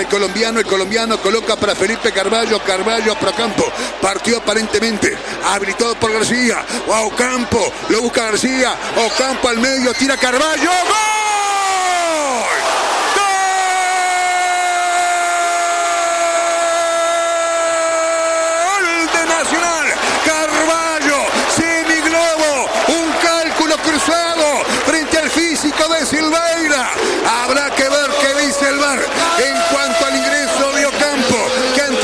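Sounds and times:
commentator shouting excitedly: 5.4 - 32.0.

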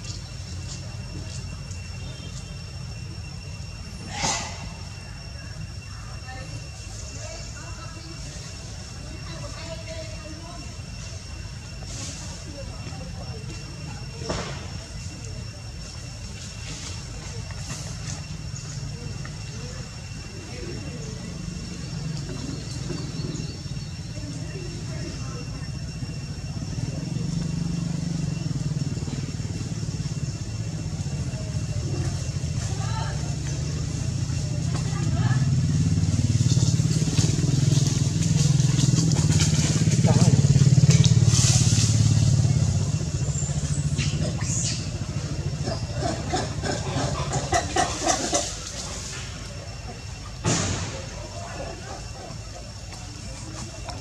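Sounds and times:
motorcycle engine running: 21.0 - 47.2.

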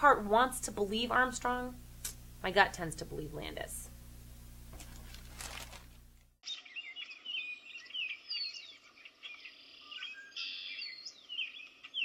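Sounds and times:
birds chirping and singing: 6.4 - 12.0.

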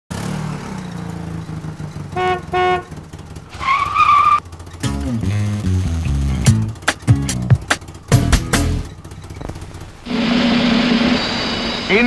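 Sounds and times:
car engine running: 0.1 - 11.9
engine revving: 0.1 - 12.0
car horn honks: 2.1 - 4.4
tyres squealing: 3.4 - 4.8, 8.7 - 10.4.

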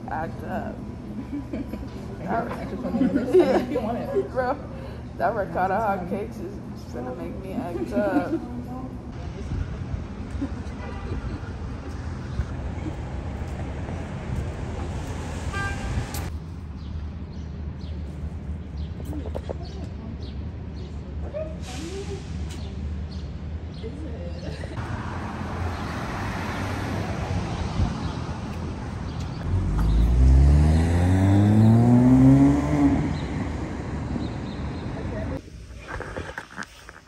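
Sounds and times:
street traffic rumble: 0.0 - 37.0
car horn toot: 15.5 - 16.1
car engine accelerating: 29.4 - 35.4.

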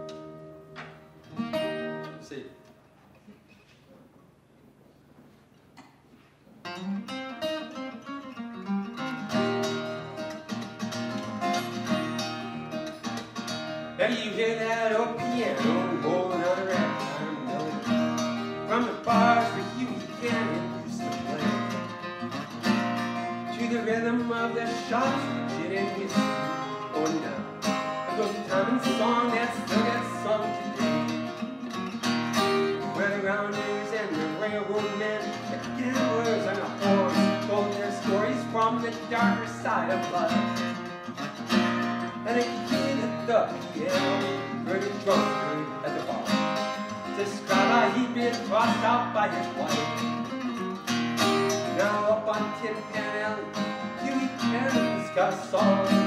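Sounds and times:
acoustic guitar strumming: 0.0 - 2.5, 6.4 - 56.0
man singing: 14.0 - 22.1, 23.3 - 31.6, 32.3 - 40.9, 42.1 - 50.4, 51.3 - 56.0.

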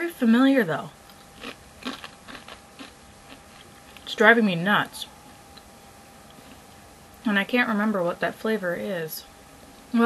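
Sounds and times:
person chewing crunchy chips: 1.1 - 4.2, 6.3 - 6.8.

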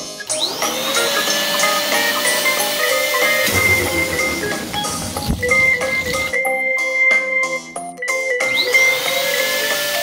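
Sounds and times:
electric balloon pump motor whine: 0.2 - 6.3, 8.4 - 10.0.

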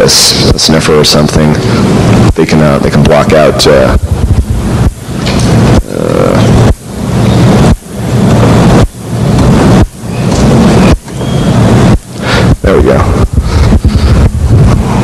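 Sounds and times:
loud rough noise: 0.0 - 15.0
low hum: 0.0 - 15.0.

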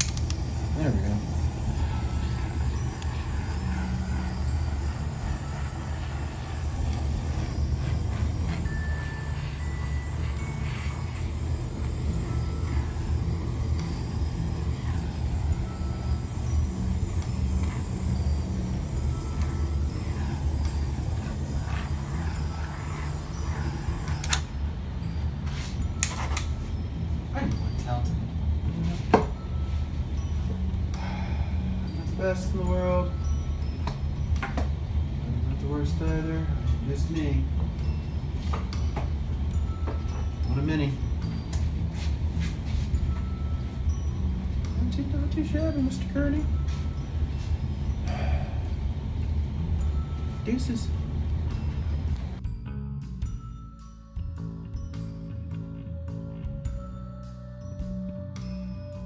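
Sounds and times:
heat gun fan whirring: 0.0 - 52.4.

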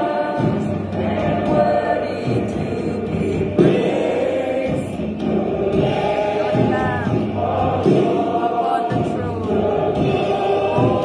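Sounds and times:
choir singing sustained notes: 0.0 - 11.0
worship music: 0.0 - 11.0.

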